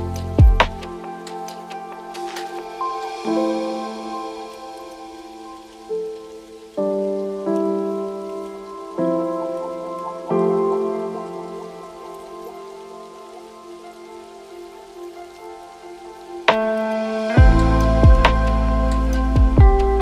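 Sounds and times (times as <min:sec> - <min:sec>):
mellow keyboard chords: 0:00.0 - 0:20.0
rain-like hiss: 0:00.0 - 0:20.0.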